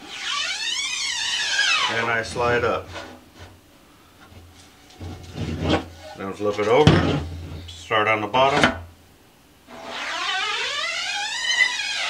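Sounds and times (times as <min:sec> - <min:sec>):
squeaky rising tone: 0:00.0 - 0:02.8, 0:09.7 - 0:12.0.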